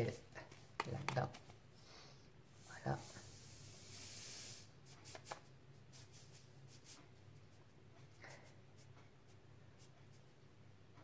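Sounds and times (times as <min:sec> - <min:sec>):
salt grains trickling: 0:03.0 - 0:04.7.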